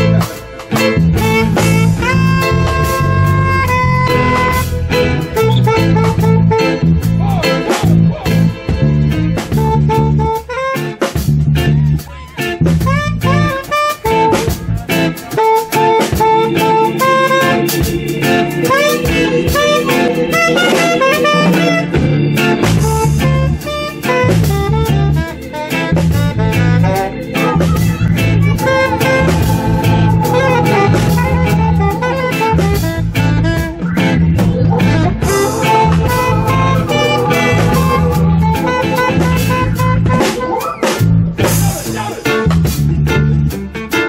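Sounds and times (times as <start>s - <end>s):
drum kit: 0.0s - 44.0s
guitar: 0.0s - 44.0s
keyboard: 0.0s - 44.0s
saxophone melody: 1.2s - 7.2s, 9.6s - 11.0s, 12.8s - 41.2s
low rhythmic pulse: 16.0s - 41.4s.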